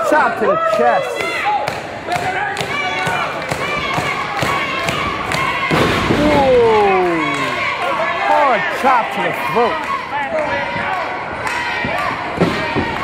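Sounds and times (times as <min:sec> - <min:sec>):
crowd whooing: 0:02.7 - 0:13.0.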